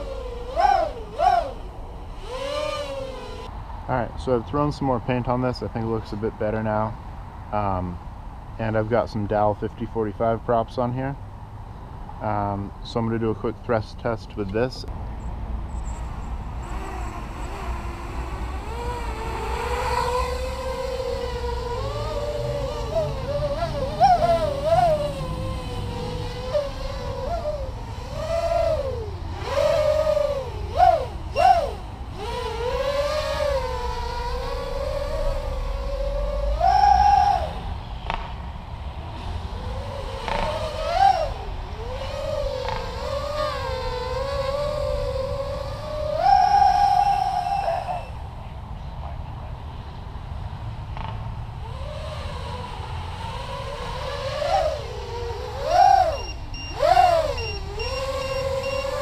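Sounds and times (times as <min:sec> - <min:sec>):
quadcopter motors whining: 0:00.0 - 0:10.5, 0:12.1 - 0:48.7, 0:50.9 - 0:59.0.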